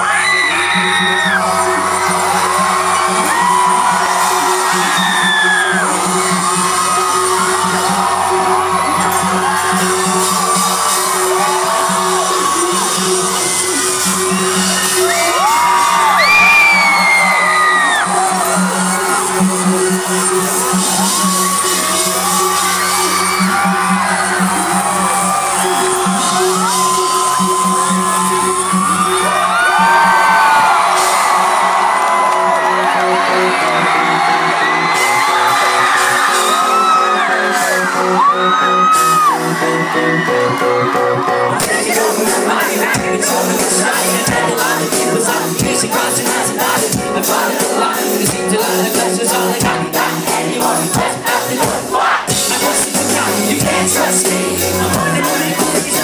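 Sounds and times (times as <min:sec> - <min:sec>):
fans screaming and whooping: 0:00.0 - 0:56.0
live band music: 0:00.0 - 0:56.0.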